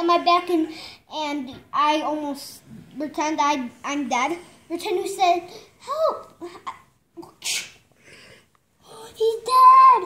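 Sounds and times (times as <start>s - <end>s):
faint breathing: 0.7s - 1.1s, 5.4s - 5.9s, 7.9s - 9.2s
child's sneeze-like breath burst: 7.3s - 7.9s.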